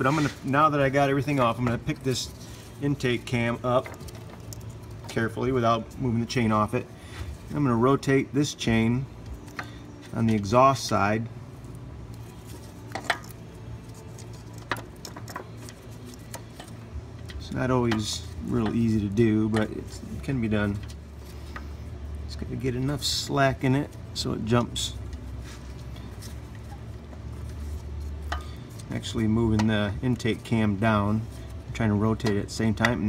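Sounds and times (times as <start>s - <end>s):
low steady hum: 0.0s - 33.0s.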